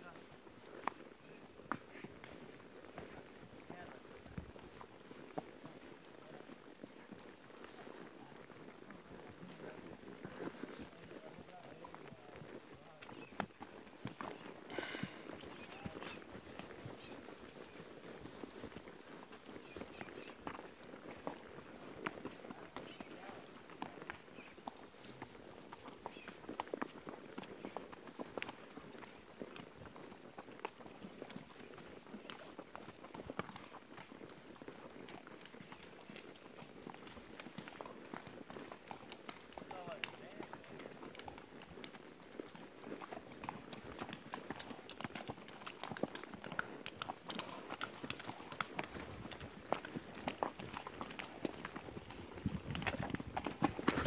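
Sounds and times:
horse hooves on stony trail: 0.0 - 54.0.

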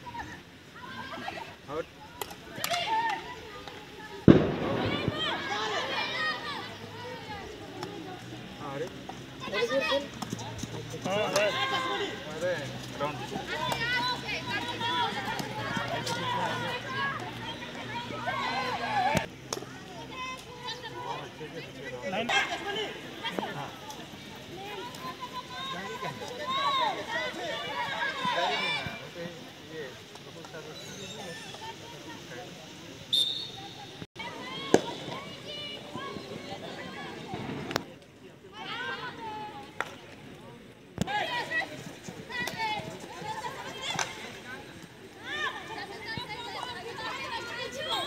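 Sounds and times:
people's voices: 0.0 - 48.0.

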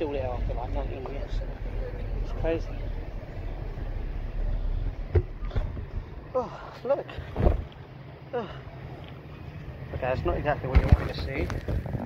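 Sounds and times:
wind buffeting microphone: 9.7 - 12.0.

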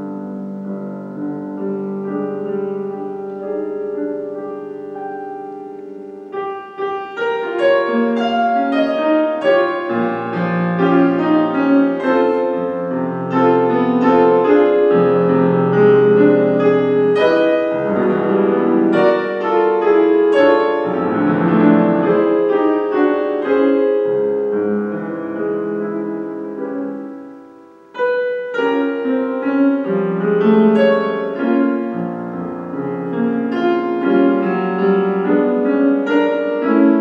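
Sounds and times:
grand piano solo: 0.0 - 37.0.

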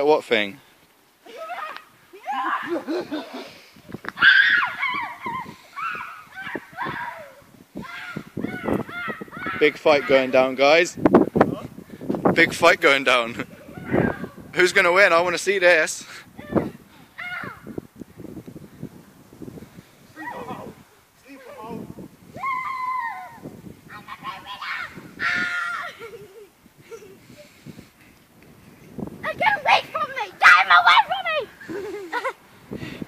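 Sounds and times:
children shrieking and laughing: 1.2 - 10.5, 13.4 - 14.5, 16.4 - 17.8, 20.1 - 27.7, 29.2 - 32.6
high-pitched vocal cries: 24.0 - 27.1.

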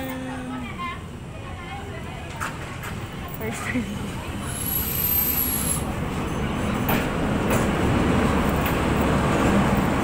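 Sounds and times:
diesel locomotive engine rumble: 0.0 - 10.0
train wheel noise: 1.9 - 10.0.

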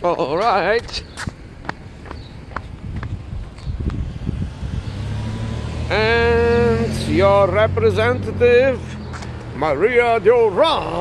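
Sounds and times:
city traffic rumble: 0.0 - 11.0
footsteps on street: 0.2 - 5.1, 8.2 - 10.0.

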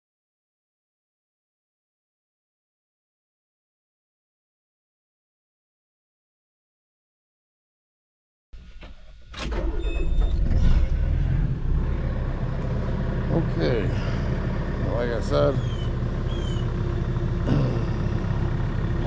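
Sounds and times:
engine start click: 8.6 - 11.4
engine rumbling: 8.6 - 19.0.

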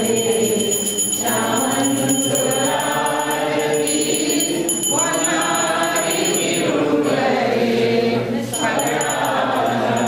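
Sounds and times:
group singing devotional song: 0.0 - 10.0.

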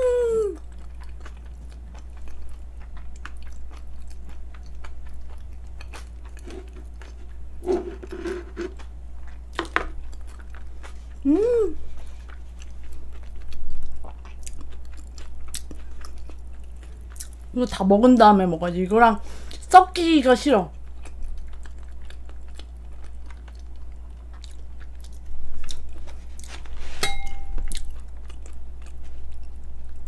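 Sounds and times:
person humming: 0.0 - 0.6, 11.2 - 11.8
chewing with wet clicks: 0.6 - 7.4, 8.8 - 11.2, 12.0 - 17.6, 20.7 - 26.6, 27.6 - 30.0.

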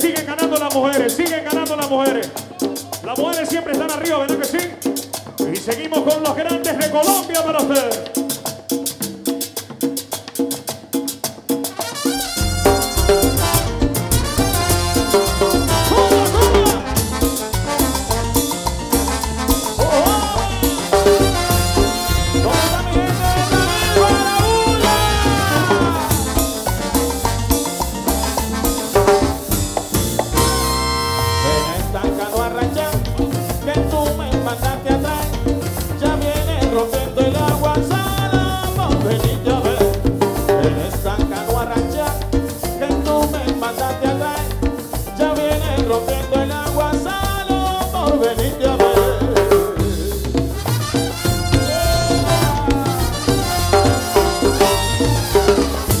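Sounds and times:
quick high percussion beat: 0.0 - 56.0
salsa band playing: 0.0 - 56.0.

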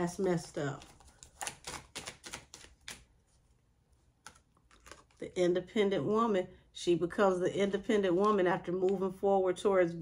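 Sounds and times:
cards being shuffled: 0.1 - 3.4, 4.1 - 5.2.

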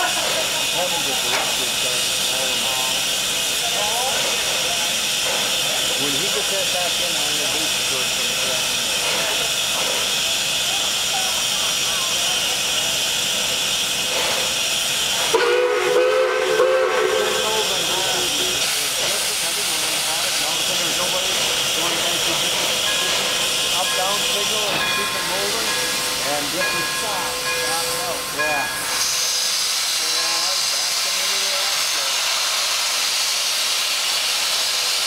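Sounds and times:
steam locomotive hissing: 0.0 - 35.0
steam whistle blast: 15.3 - 17.7.

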